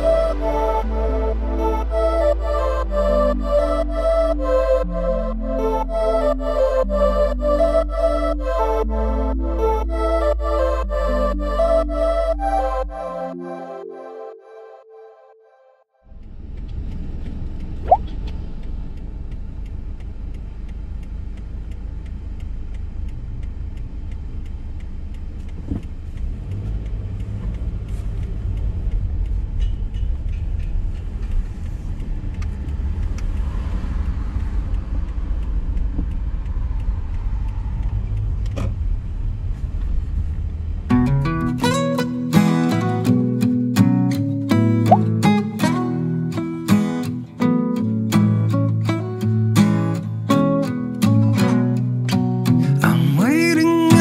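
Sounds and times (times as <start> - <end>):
road and engine rumble: 0.0 - 13.2, 16.0 - 54.0
acoustic guitar music: 0.0 - 14.7, 40.9 - 54.0
faint ticks: 16.1 - 54.0.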